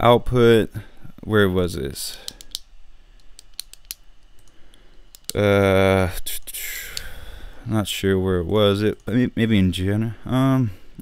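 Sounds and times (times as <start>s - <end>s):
faint low hum: 0.0s - 11.0s
computer mouse clicks: 2.2s - 5.4s.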